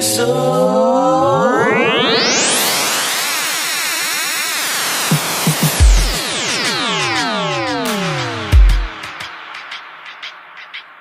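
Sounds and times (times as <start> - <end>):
swirling synthesizer sweep: 0.1 - 10.2.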